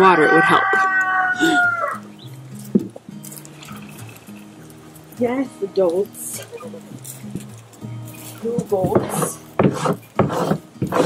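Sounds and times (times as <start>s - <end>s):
drawn-out animal call: 0.0s - 2.4s, 3.5s - 7.6s
soft background music: 0.0s - 11.0s.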